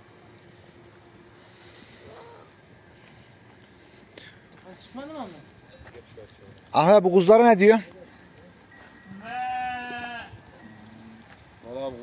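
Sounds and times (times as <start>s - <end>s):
faint low animal call: 1.7s - 2.7s
sheep bleating: 9.1s - 11.3s.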